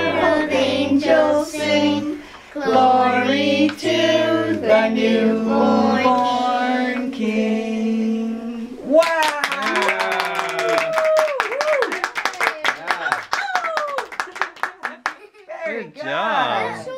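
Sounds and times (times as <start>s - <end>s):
children singing: 0.0s - 8.6s
group clapping: 8.9s - 15.3s.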